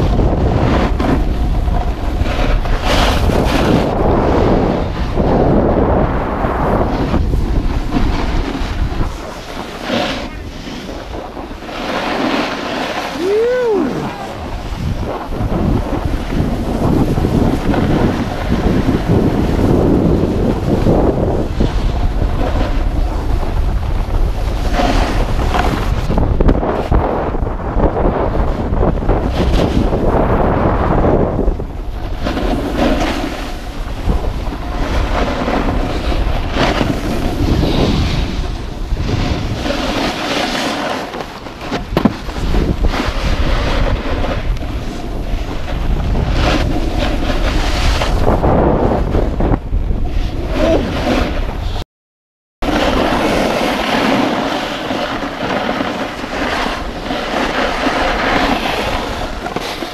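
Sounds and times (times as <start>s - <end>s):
skis scraping on snow: 0.0s - 51.8s, 52.6s - 59.9s
wind buffeting microphone: 0.0s - 51.8s, 52.6s - 59.9s.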